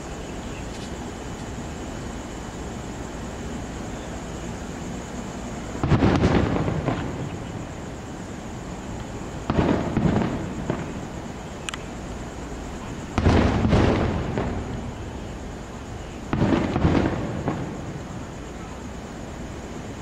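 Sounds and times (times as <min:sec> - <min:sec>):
fireworks booming: 0:00.0 - 0:20.0.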